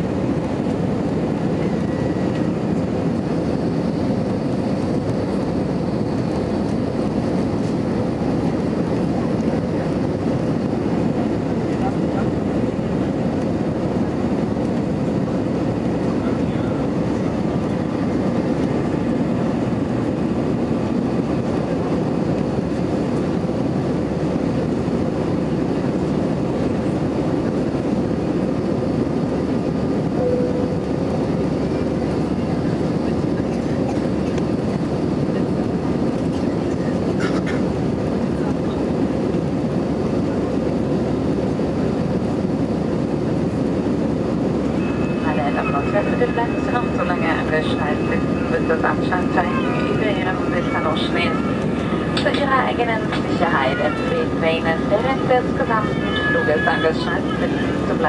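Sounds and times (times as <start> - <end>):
jet engines humming: 0.0 - 58.0
airflow rushing: 41.4 - 58.0.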